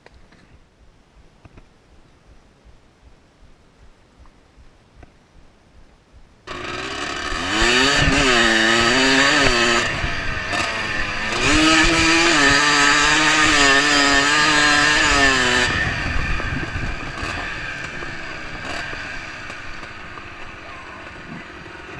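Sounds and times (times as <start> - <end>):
dirt bike engine revving: 6.4 - 21.9.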